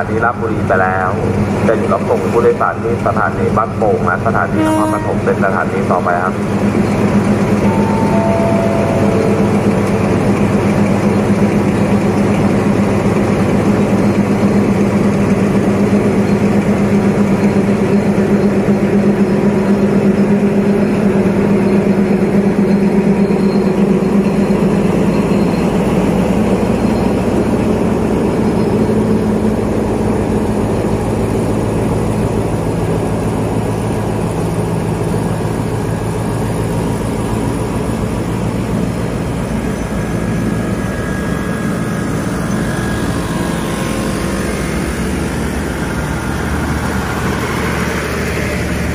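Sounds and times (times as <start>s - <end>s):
locomotive engine under load: 0.0s - 48.9s
train coaches rolling by: 0.0s - 48.9s.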